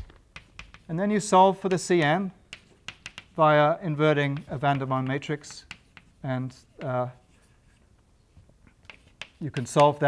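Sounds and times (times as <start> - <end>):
chalk tapping: 0.0 - 7.9, 8.6 - 10.0
chalk scratching on blackboard: 4.1 - 7.9, 8.8 - 10.0.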